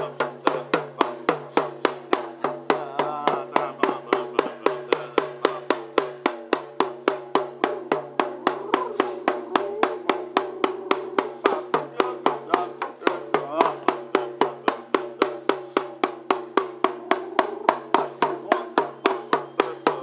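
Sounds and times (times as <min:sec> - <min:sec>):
frame drum beaten fast: 0:00.0 - 0:20.0.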